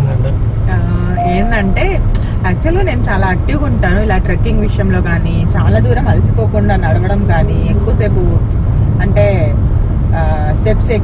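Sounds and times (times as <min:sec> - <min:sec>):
road and engine noise in car: 0:00.0 - 0:11.0
woman speaking: 0:00.7 - 0:09.6, 0:10.2 - 0:11.0.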